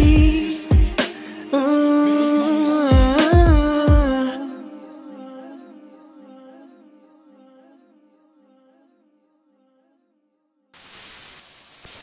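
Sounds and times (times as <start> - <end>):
static hiss: 10.8 - 12.0.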